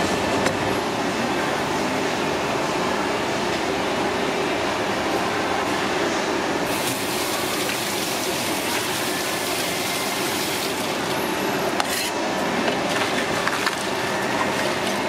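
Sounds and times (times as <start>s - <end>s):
tap water running into sink: 6.7s - 11.0s.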